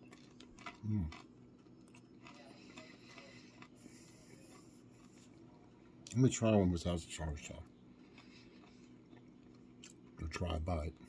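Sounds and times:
chewing crunchy food: 0.0s - 11.0s.

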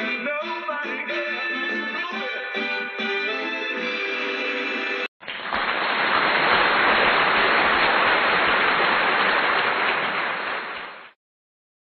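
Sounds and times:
audience applauding: 5.2s - 11.2s.

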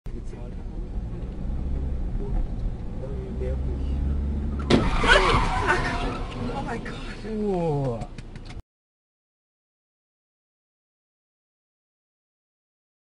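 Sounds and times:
car engine rumble: 0.1s - 8.6s
road noise: 0.1s - 8.6s
car crash impact: 4.5s - 7.2s.

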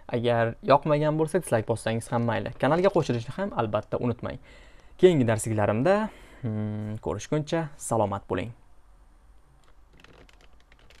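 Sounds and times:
faint keyboard typing: 9.5s - 11.0s.

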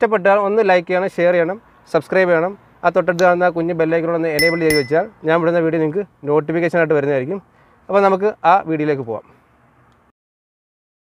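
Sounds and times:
man talking: 0.0s - 9.3s
click and ding sound effect: 4.4s - 5.1s.

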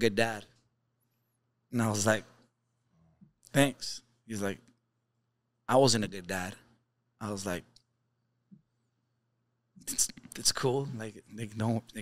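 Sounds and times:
man speaking: 0.0s - 0.5s, 1.7s - 2.4s, 3.5s - 4.7s, 5.7s - 7.7s, 9.8s - 12.0s.

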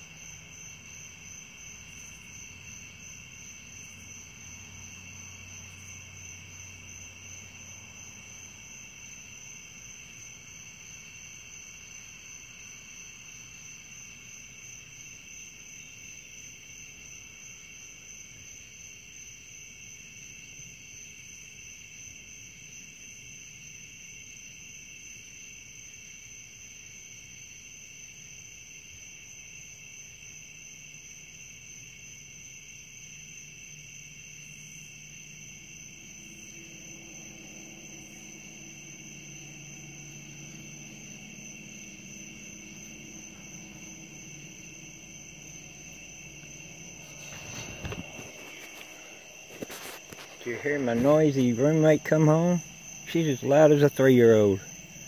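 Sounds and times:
crickets chirping: 0.0s - 55.0s
low hum: 34.8s - 55.0s.

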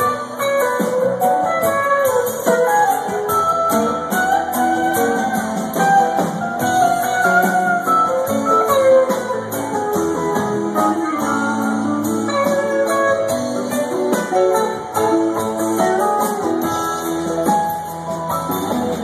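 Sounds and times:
electric guitars: 0.0s - 19.0s
live rock band playing: 0.0s - 19.0s.

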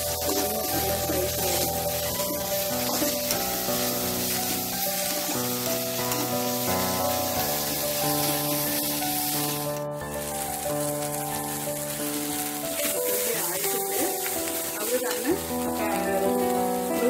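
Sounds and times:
metal spatula stirring in pan: 0.0s - 17.0s
onions sizzling in hot oil: 0.0s - 17.0s.

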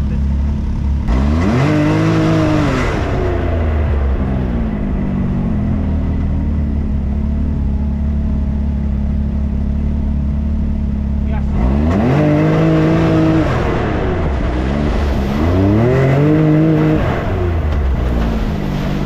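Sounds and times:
utility vehicle engine revving: 0.0s - 19.0s.

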